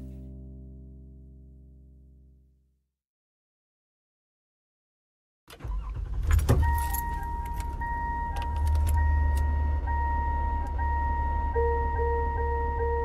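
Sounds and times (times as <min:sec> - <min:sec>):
keys jangling and clicking: 0:06.3 - 0:07.8
car warning chime pinging: 0:06.6 - 0:13.0.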